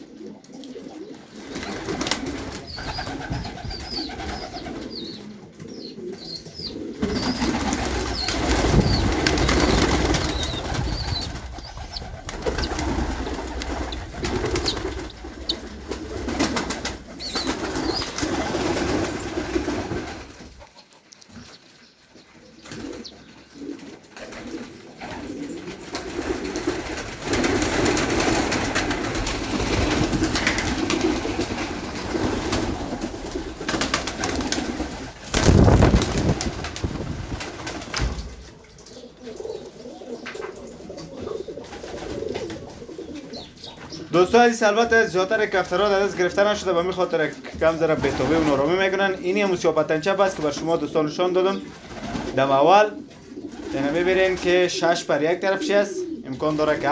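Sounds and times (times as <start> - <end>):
pigeons cooing: 0.0 - 36.8, 37.5 - 56.9.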